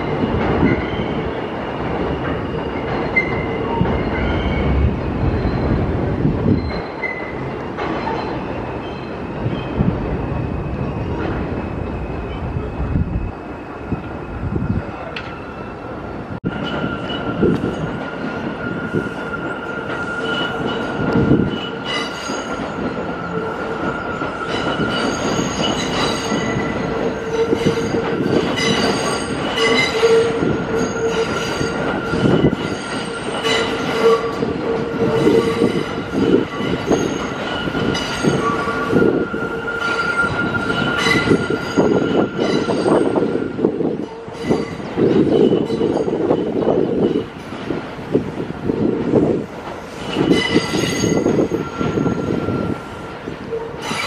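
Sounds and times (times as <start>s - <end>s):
subway train wheels squealing: 0.0s - 54.0s
train rumble and whine: 0.0s - 54.0s.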